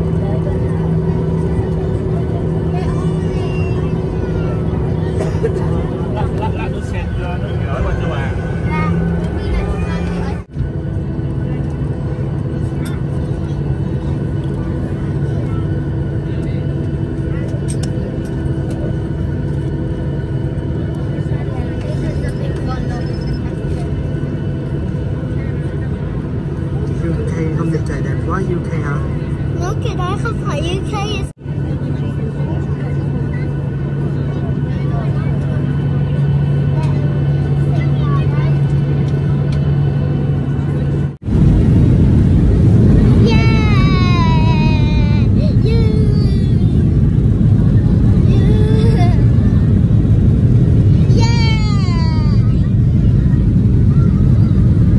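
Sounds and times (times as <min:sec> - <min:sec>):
jet engines droning in cabin: 0:00.0 - 0:54.9.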